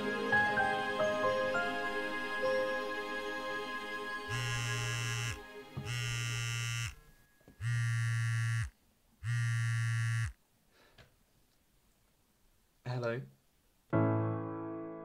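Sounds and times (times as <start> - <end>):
soft music: 0.0 - 6.3, 13.9 - 15.0
phone vibrating on a desk: 4.3 - 10.4.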